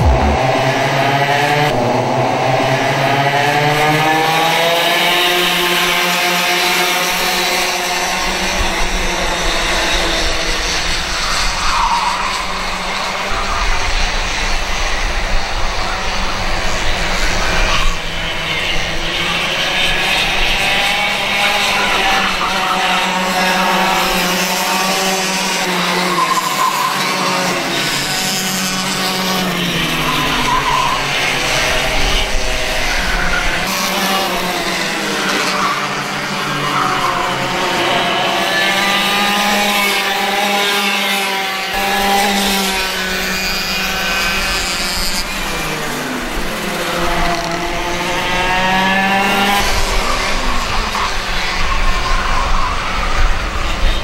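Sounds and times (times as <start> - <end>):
racing kart engines: 0.0 - 54.0.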